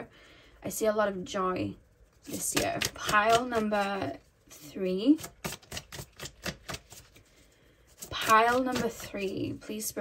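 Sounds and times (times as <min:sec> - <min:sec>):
cards being shuffled by hand: 0:05.1 - 0:07.4, 0:08.0 - 0:09.3.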